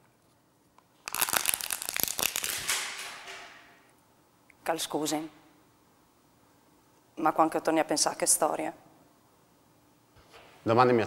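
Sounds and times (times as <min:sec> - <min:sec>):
plastic cup crushed crackling: 0:01.0 - 0:03.1.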